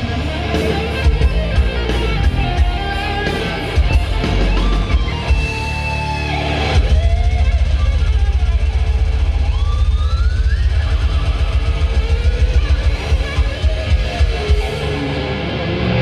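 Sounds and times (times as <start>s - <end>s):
distorted death metal band: 0.0s - 16.0s
lead guitar sliding upward: 0.0s - 16.0s.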